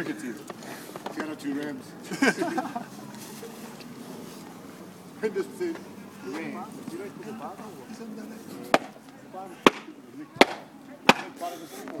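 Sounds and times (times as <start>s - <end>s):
low murmuring voices: 0.0s - 12.0s.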